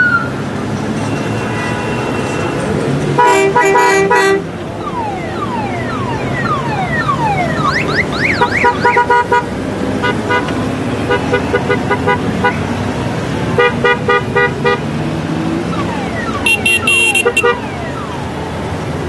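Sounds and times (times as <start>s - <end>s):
motorcycle engines: 0.0s - 19.0s
motorcycle horns tooting: 3.2s - 4.5s, 16.4s - 17.7s.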